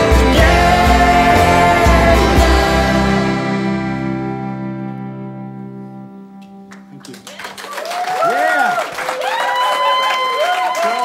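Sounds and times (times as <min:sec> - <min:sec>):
audience applause and cheers: 0:07.0 - 0:11.0.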